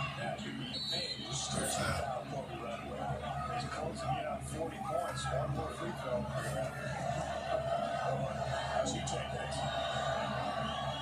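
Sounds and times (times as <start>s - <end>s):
arena crowd noise: 0.0s - 11.0s
commentator talking: 1.4s - 2.1s.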